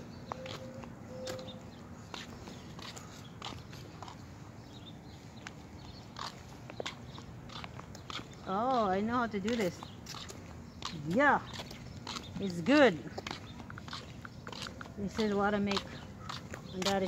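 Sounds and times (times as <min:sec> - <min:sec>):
footsteps on sidewalk: 0:00.0 - 0:17.0.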